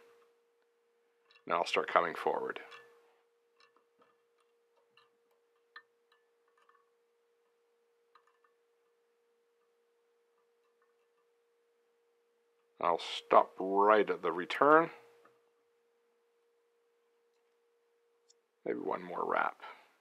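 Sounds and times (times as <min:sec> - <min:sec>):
faint steady hum: 0:00.0 - 0:20.0
faint small clicks and taps: 0:18.2 - 0:18.4.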